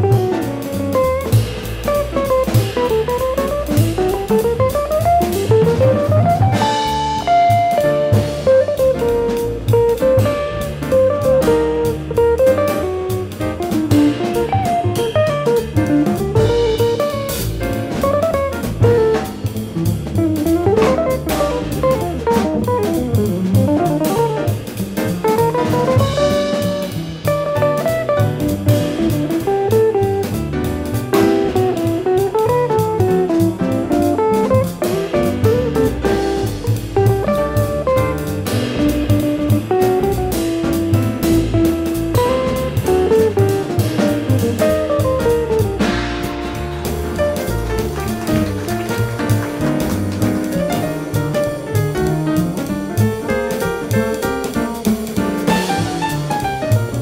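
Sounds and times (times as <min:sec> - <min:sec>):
drum kit: 0:00.0 - 0:57.0
plucked guitar melody: 0:00.0 - 0:57.0.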